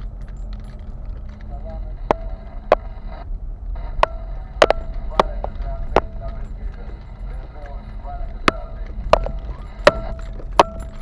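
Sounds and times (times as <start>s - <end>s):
loose items rattling and clinking: 0.0s - 1.8s, 4.6s - 11.0s
engine and tyre rumble: 0.0s - 11.0s.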